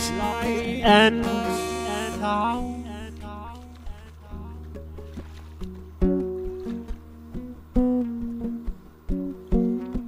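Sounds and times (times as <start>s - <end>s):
plucked guitar single notes: 0.0s - 10.0s.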